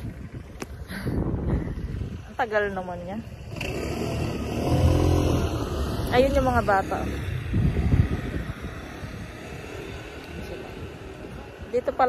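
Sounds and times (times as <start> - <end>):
car engine passing by: 3.5 - 11.5.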